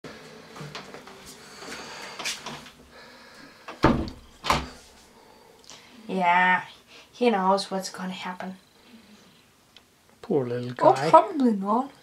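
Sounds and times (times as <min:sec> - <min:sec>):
door banging: 0:03.8 - 0:04.8.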